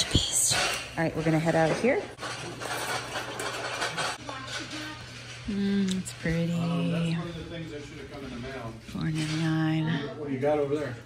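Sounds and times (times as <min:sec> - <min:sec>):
shopping cart rolling on concrete: 0:01.3 - 0:05.7.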